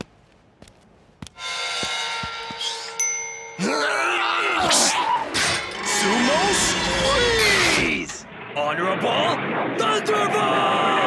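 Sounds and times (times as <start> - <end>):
short ding: 1.4 - 3.9.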